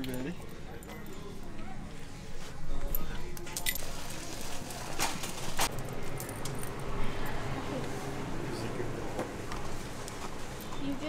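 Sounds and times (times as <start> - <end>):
faint background voices: 0.0 - 5.7.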